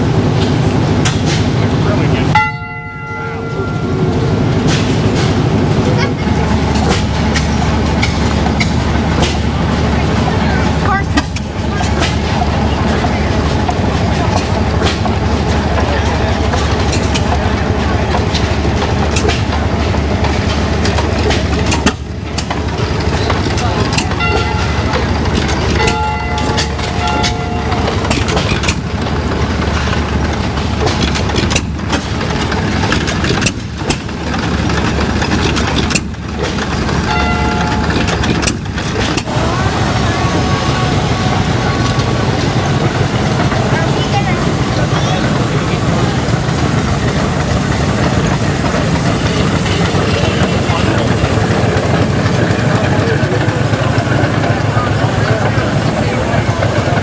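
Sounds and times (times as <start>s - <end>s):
stationary engines clattering: 0.0s - 57.0s.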